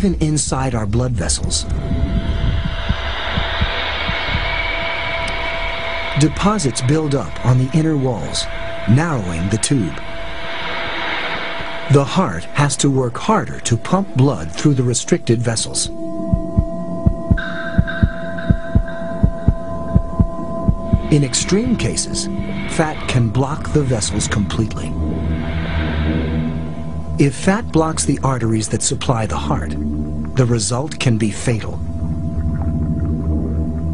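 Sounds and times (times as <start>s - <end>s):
steady hiss: 0.0s - 16.0s, 16.6s - 32.4s
low thumping pulses: 0.0s - 33.9s
steady hum: 0.0s - 33.9s
heartbeat thumps: 1.7s - 4.9s, 16.3s - 22.4s
faint held tones: 13.8s - 33.9s.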